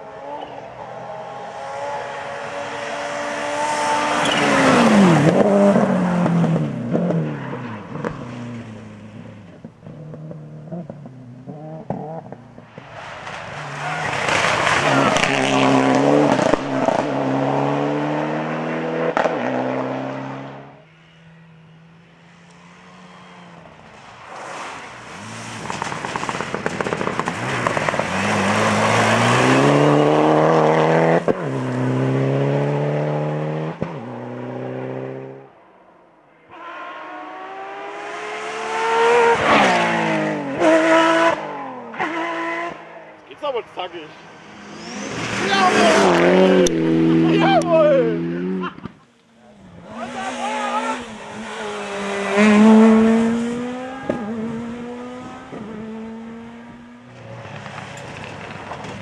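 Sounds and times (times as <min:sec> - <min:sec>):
rally car engines revving: 0:00.0 - 0:35.6, 0:36.4 - 0:59.0.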